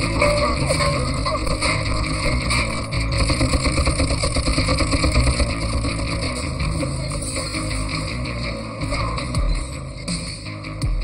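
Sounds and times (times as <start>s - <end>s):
vehicle engines running: 0.0s - 10.2s.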